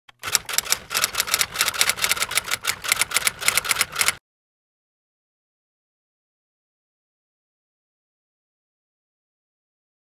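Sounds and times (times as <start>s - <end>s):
typewriter keys clacking: 0.1s - 4.2s.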